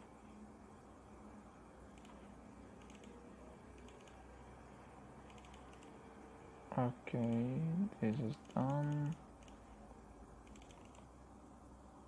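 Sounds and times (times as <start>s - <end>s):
low steady hum: 0.0s - 12.0s
computer keyboard typing: 1.9s - 2.2s, 2.8s - 3.2s, 3.8s - 4.2s, 5.3s - 5.9s, 8.4s - 9.6s, 10.4s - 11.1s.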